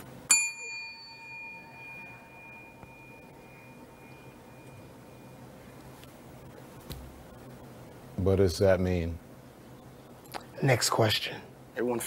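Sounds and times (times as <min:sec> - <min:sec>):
small bell ringing: 0:00.3 - 0:05.3.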